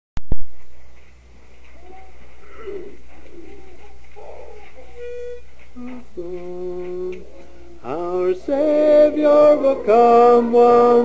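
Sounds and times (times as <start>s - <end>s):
steady low hum: 0.3s - 11.0s
soft low cooing calls: 1.8s - 6.4s.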